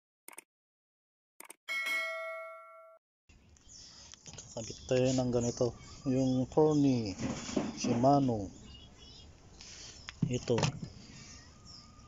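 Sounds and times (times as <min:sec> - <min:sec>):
notification bell ding: 0:01.7 - 0:03.0.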